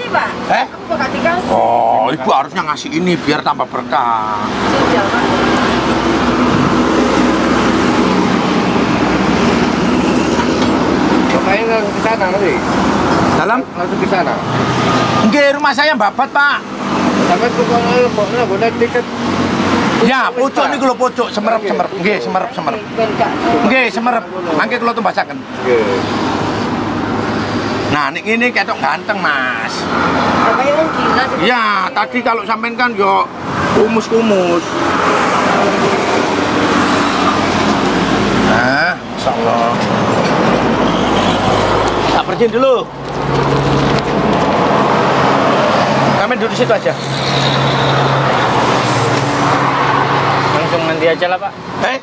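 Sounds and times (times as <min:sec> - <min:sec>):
engine hum: 0:00.0 - 0:52.0
tyre noise of passing vehicle: 0:00.0 - 0:52.0.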